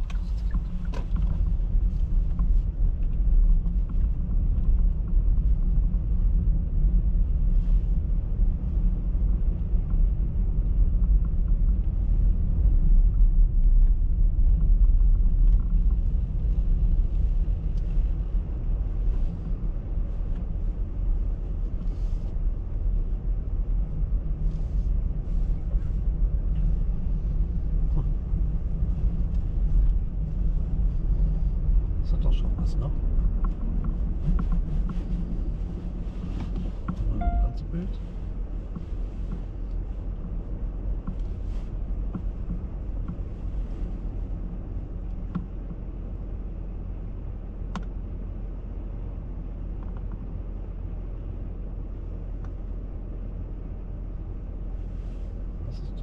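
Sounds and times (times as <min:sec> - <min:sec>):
tyre and road rumble: 0:00.0 - 0:56.0
short tone: 0:37.1 - 0:37.8.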